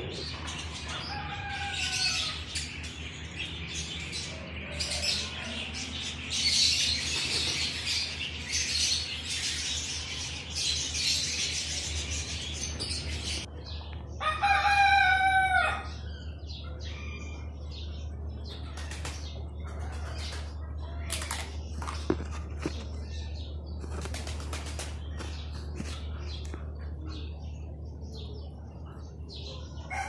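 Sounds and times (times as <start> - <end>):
rooster crowing: 0.9 - 2.5, 14.2 - 16.0.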